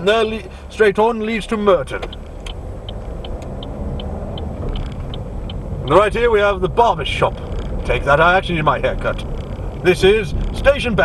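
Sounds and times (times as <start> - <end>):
car engine and road noise: 0.0 - 11.0
turn signal ticking: 0.0 - 11.0.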